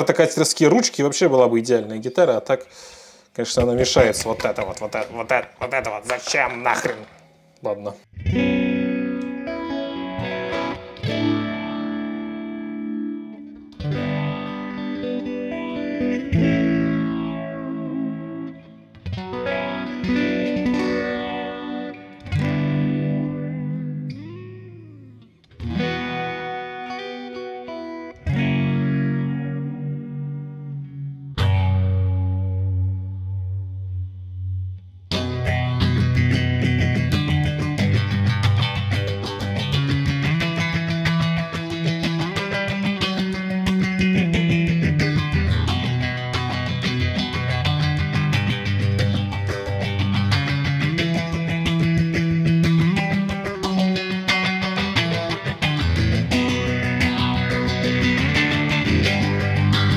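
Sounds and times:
electric guitar playing: 3.6s - 59.9s.

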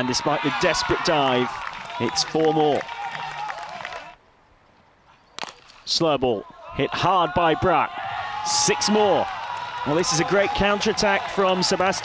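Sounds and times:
faint outdoor ambience: 0.0s - 12.0s.

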